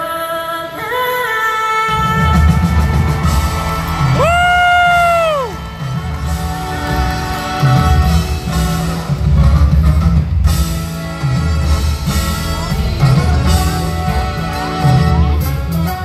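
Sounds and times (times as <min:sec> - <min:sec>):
live band with strong bass: 0:01.9 - 0:16.0.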